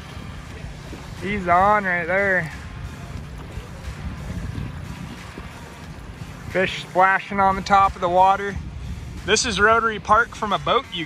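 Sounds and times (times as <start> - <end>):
fast river water rushing: 0.0 - 11.0
wind buffeting microphone: 0.0 - 11.0.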